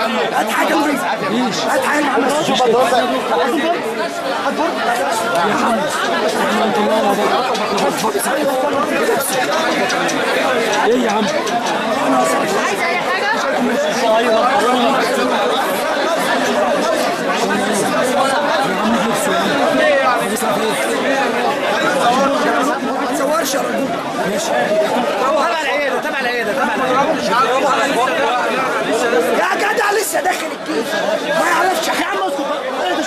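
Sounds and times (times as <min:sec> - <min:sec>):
crowd chatter: 0:00.0 - 0:33.0.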